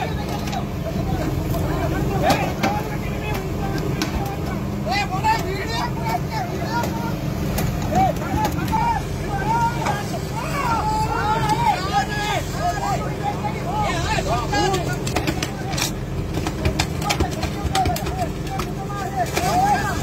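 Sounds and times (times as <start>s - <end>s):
boat engine running: 0.0s - 20.0s
men shouting: 0.0s - 20.0s.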